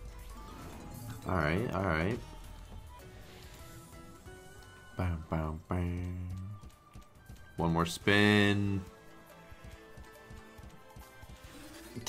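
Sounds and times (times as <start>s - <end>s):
faint electronic game music: 0.0s - 12.0s.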